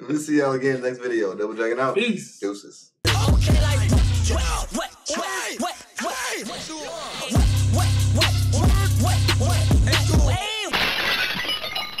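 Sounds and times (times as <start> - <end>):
hip-hop music: 3.0 - 10.8
glass shattering crash effect: 10.7 - 12.0.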